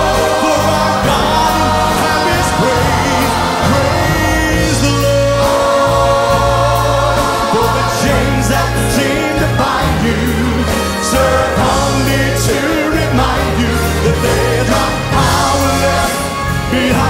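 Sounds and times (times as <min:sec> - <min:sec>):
bass line: 0:00.0 - 0:17.0
choir singing gospel song: 0:00.0 - 0:17.0.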